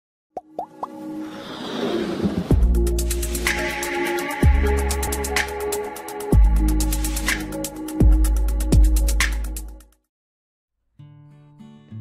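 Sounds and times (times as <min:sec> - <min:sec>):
whoosh of music: 0:00.9 - 0:05.4.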